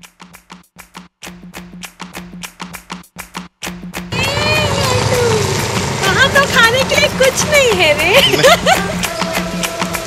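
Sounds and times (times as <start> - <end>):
high voice calling out: 4.1 - 5.6.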